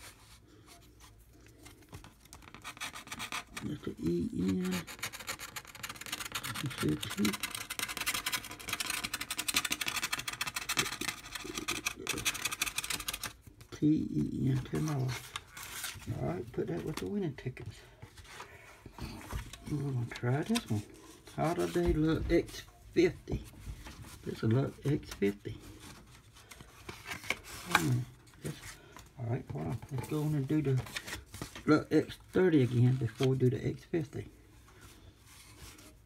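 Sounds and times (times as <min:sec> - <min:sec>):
paper rubbing: 0:01.9 - 0:13.4
lottery ticket being scratched: 0:02.4 - 0:13.4.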